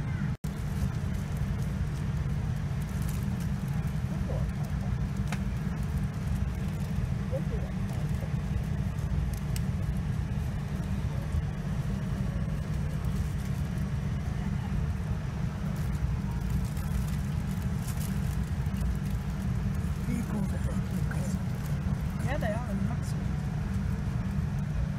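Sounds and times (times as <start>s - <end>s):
low rumble of airliner cabin: 0.0s - 24.9s.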